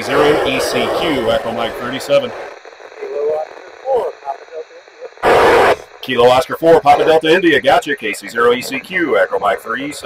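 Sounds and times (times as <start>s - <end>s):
noisy radio voice through speaker: 0.0s - 10.0s.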